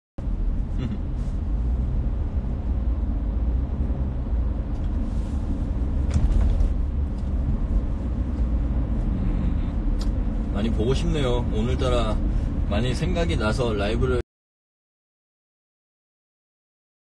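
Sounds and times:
car cabin road and engine rumble: 0.2s - 14.2s.

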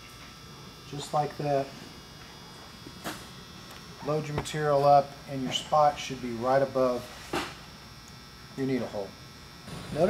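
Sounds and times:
electrical hum: 0.0s - 10.0s
faint high whine: 0.0s - 10.0s.

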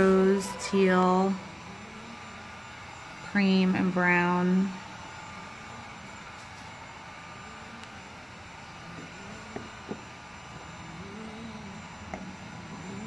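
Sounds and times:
steady room hum: 0.0s - 13.0s.

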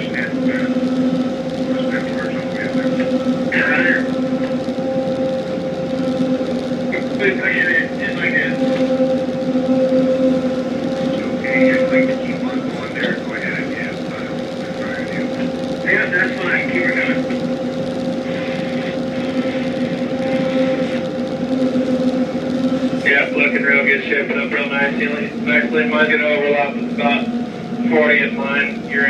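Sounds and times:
diesel engines running: 0.0s - 29.0s.

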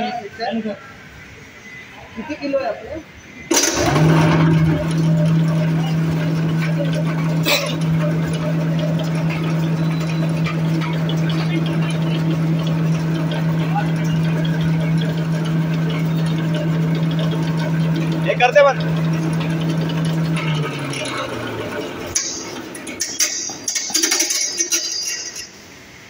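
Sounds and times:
pulverizer machine humming: 3.5s - 25.7s.

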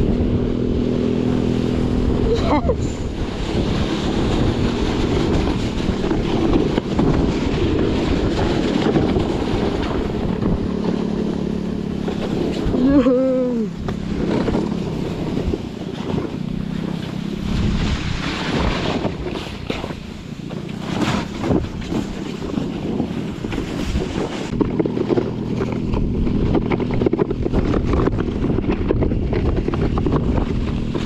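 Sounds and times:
board rushing over snow: 0.0s - 31.0s
low engine drone: 0.0s - 31.0s
wind buffeting microphone: 0.0s - 31.0s.

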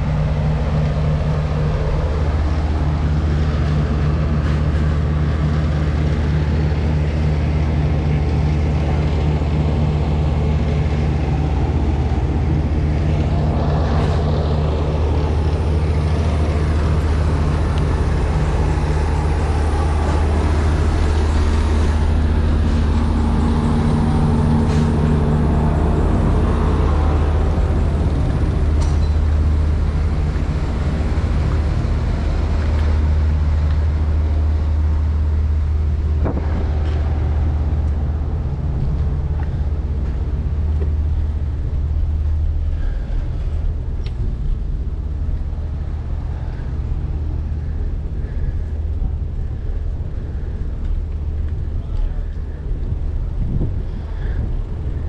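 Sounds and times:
truck engines idling: 0.0s - 55.0s.

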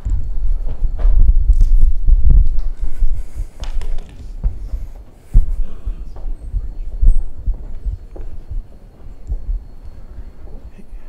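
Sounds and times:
microphone handling thuds: 0.0s - 11.0s.

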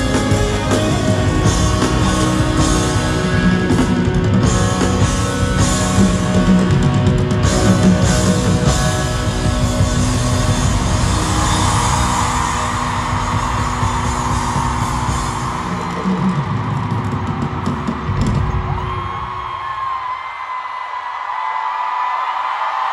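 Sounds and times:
live rock music through speakers: 0.0s - 19.5s
crowd screaming and cheering: 0.0s - 22.9s.

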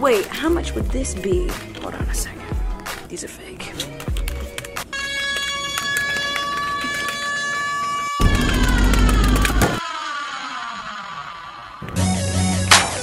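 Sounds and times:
horn-like tone: 4.9s - 8.6s.

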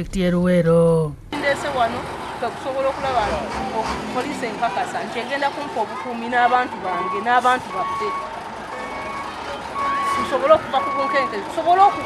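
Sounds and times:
reversing alarm beeping: 6.4s - 12.0s.

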